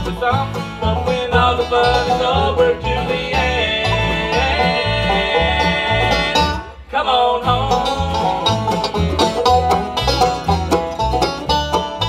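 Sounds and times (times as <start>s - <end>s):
acoustic guitar: 0.0s - 12.0s
banjo picking: 0.0s - 12.0s
upright bass pulsing: 0.0s - 12.0s.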